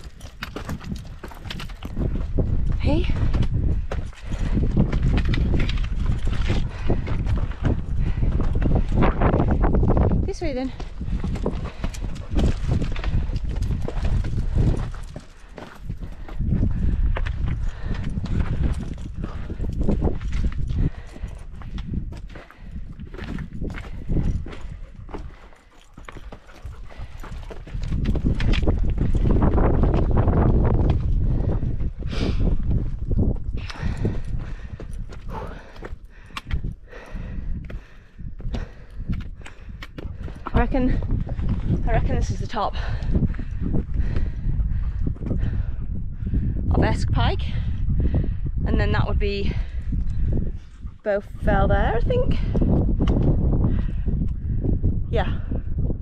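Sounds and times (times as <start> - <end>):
footsteps on rock: 0.0 - 44.4
wind rumbling on microphone: 0.0 - 56.0.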